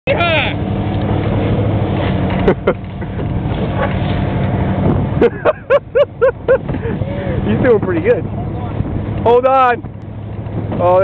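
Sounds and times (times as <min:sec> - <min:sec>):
vehicle engine drone: 0:00.1 - 0:11.0.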